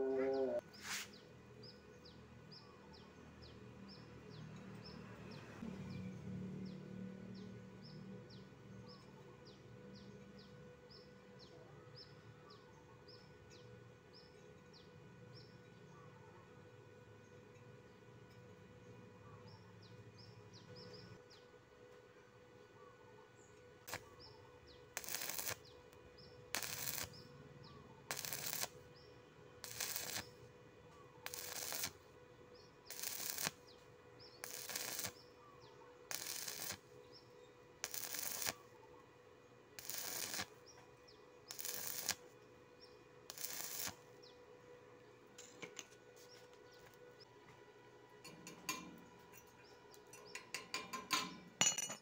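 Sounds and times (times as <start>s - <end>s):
welding arc crackle: 23.9s - 24.1s, 25.0s - 25.7s, 26.5s - 27.2s, 28.1s - 28.8s, 29.6s - 30.3s, 31.2s - 32.0s, 32.9s - 33.7s, 34.4s - 35.2s, 36.1s - 36.9s, 37.8s - 38.6s, 39.8s - 40.6s, 41.5s - 42.2s, 43.3s - 44.0s.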